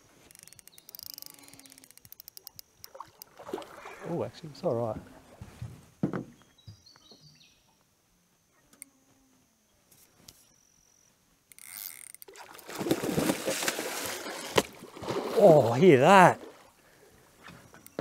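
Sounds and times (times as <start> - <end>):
fish thrashing and splashing water: 2.9 - 4.2, 12.3 - 15.8.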